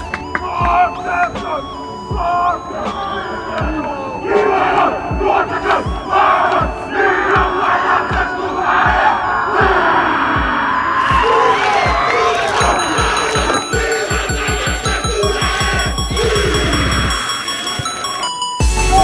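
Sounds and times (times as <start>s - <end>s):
men chanting and shouting: 0.1s - 19.0s.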